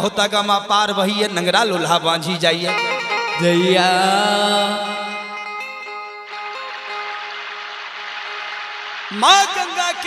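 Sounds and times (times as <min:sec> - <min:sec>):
steady hiss: 0:06.6 - 0:09.9.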